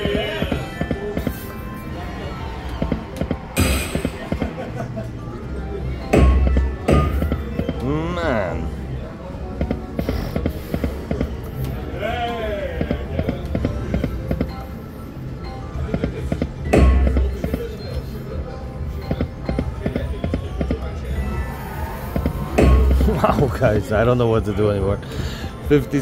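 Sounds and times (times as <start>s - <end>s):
slot machine spin music: 0.0s - 8.6s, 13.0s - 24.8s.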